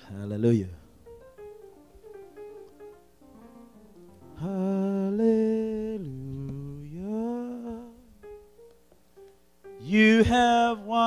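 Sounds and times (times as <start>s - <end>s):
man humming a slow melody: 4.3s - 8.5s.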